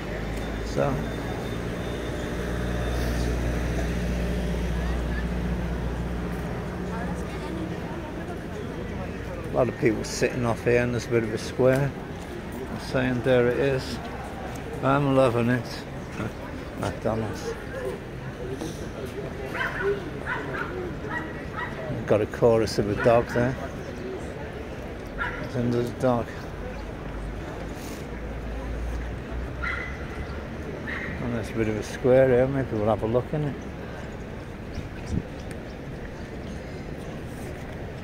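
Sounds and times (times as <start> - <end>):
vehicle engine running: 0.0 - 9.6
street noise: 0.0 - 38.0
dog barking: 19.5 - 21.8, 23.0 - 23.5, 25.2 - 25.5, 29.6 - 30.0.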